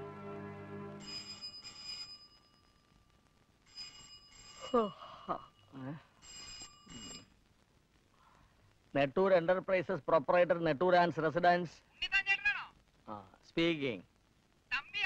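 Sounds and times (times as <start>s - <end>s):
desk telephone ringing: 0.8s - 2.8s, 3.7s - 4.9s, 6.2s - 7.3s.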